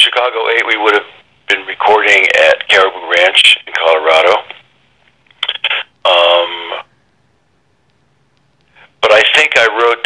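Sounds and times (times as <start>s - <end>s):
person's voice over telephone: 0.0s - 4.6s, 5.4s - 6.9s, 9.0s - 10.0s.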